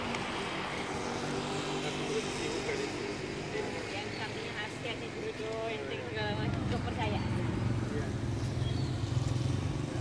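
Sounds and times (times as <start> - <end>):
traffic noise: 0.0 - 10.0
people talking: 1.7 - 8.2.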